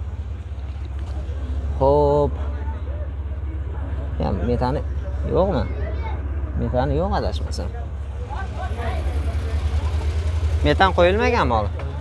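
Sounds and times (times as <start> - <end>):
people talking: 1.8 - 12.0.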